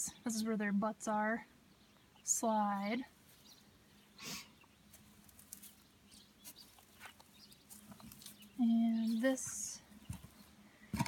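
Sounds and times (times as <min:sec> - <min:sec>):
faint footsteps: 0:04.8 - 0:11.0.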